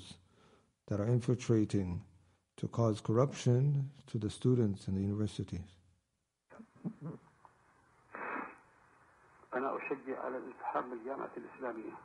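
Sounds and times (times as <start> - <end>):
man speaking: 0.9 - 2.0, 2.6 - 5.7, 9.5 - 12.0
burst of noise: 8.1 - 8.6.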